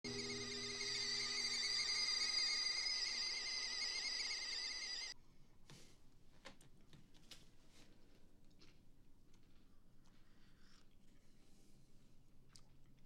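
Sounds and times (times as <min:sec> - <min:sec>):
kettle whistling: 0:00.0 - 0:05.2.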